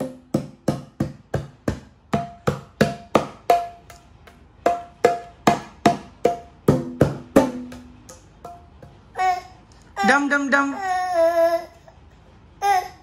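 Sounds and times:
bongo drums slapped by hands: 0:00.0 - 0:09.0.

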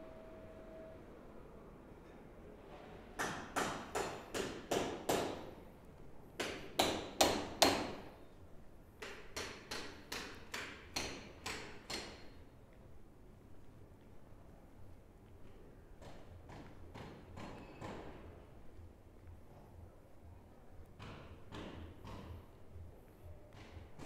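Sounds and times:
hammer-like sharp knocks: 0:03.2 - 0:05.5, 0:06.4 - 0:08.0, 0:09.0 - 0:12.3, 0:16.0 - 0:18.2, 0:21.0 - 0:22.5.

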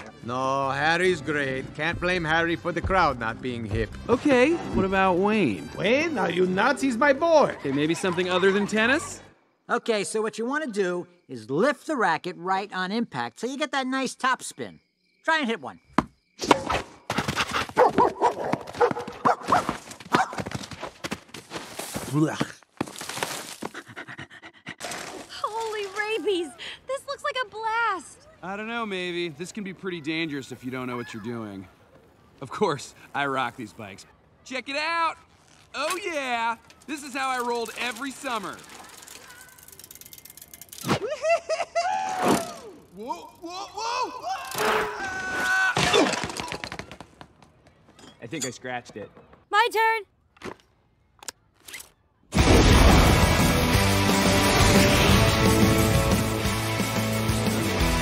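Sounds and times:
cartoon werewolf panting: 0:23.7 - 0:24.8.

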